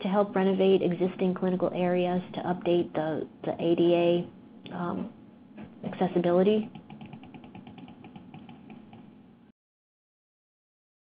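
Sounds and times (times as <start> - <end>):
fast small clicks: 6.6 - 9.1.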